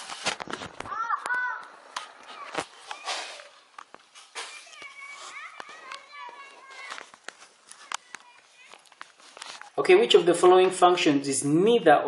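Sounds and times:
sharp clicks and rustles: 0.0s - 9.8s
children calling and shouting: 0.8s - 10.9s.

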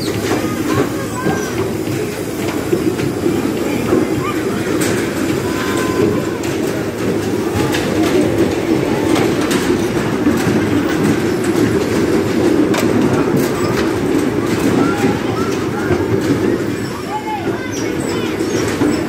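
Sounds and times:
bumper cars rolling rumble: 0.0s - 19.0s.

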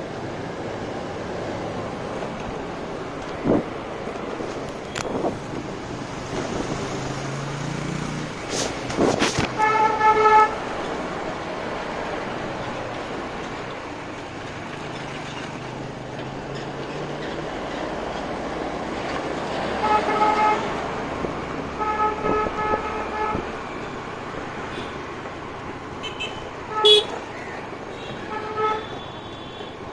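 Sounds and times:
wind and road noise: 0.0s - 29.9s
vehicle horn beeping: 9.6s - 10.6s, 21.8s - 23.4s, 26.0s - 27.2s, 27.9s - 29.8s.

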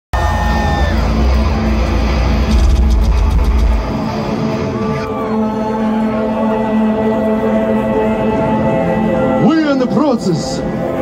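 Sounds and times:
heavy metal band playing live: 0.2s - 5.3s.

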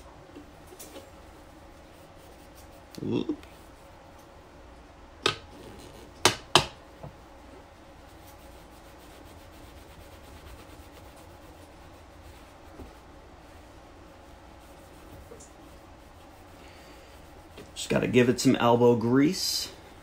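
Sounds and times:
cloth scrubbing polish: 0.9s - 3.9s, 8.0s - 18.4s.

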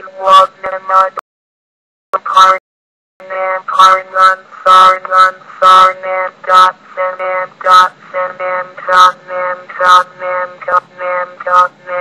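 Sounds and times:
computer text-to-speech voice: 0.0s - 1.2s, 2.2s - 2.6s, 3.2s - 12.0s.

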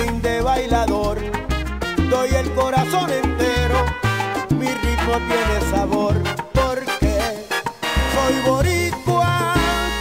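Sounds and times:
salsa band instrumental: 0.0s - 10.0s.

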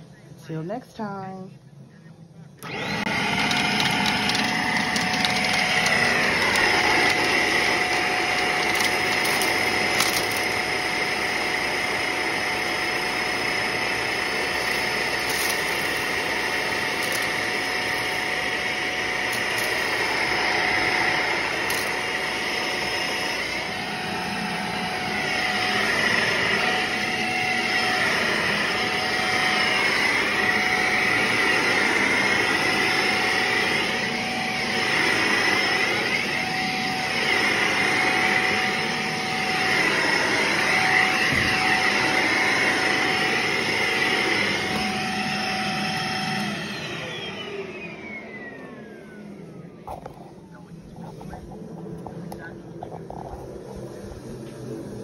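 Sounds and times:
vacuum cleaner running on carpet: 2.6s - 55.0s
vacuum motor winding down: 2.6s - 55.0s.

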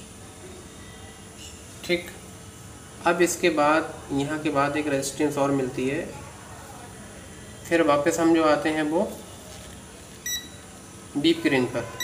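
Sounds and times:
multimeter short high beep: 10.2s - 10.6s.

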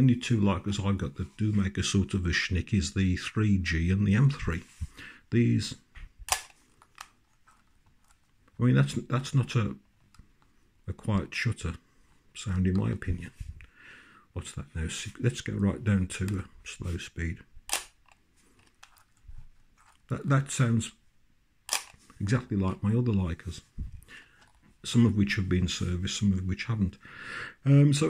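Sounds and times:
small camera clicks: 6.3s - 7.1s, 17.7s - 18.2s, 21.7s - 22.0s
camera shutter clunk: 21.7s - 22.0s
small shutter click: 21.7s - 22.0s.

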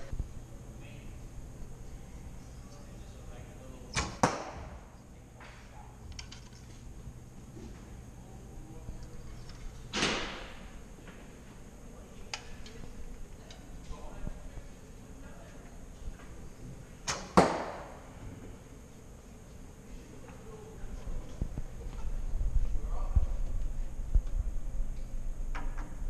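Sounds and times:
arrow striking target: 3.9s - 4.8s, 9.9s - 10.6s, 17.1s - 18.0s.

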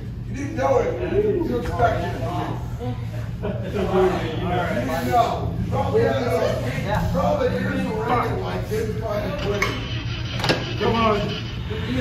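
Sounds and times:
steady low hum: 0.0s - 12.0s
indistinct voices talking: 0.5s - 12.0s.

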